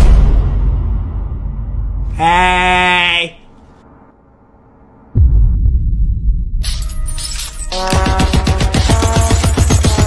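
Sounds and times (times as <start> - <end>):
low boom: 0.0 - 2.1, 5.1 - 6.6
quavering bleat-like cry: 2.1 - 3.5.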